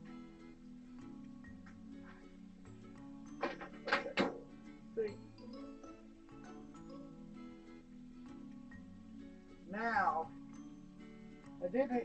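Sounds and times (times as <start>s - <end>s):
background music: 0.0s - 12.0s
sheet metal clunks and scrapes: 3.3s - 4.5s.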